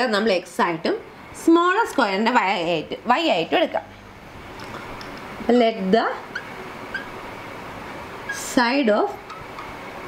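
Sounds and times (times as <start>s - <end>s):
marker squeaking on glass: 6.3s - 7.2s.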